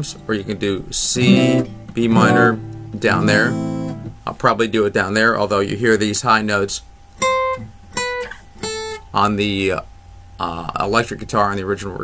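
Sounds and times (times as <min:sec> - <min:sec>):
acoustic guitar single notes: 0:00.0 - 0:04.3.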